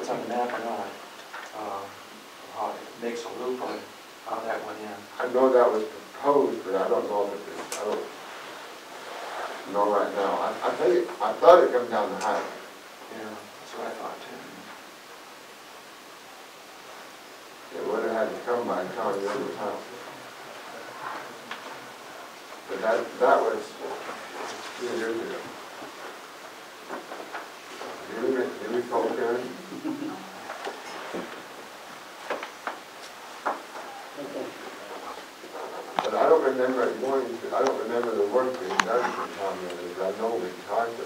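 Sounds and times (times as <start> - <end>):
faint steady hiss: 0.0 - 41.0
person talking: 28.0 - 31.0, 36.0 - 41.0.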